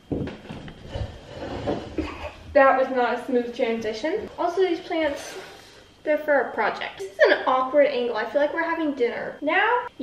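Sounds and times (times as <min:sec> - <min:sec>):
person sitting down on chair: 0:00.1 - 0:02.2.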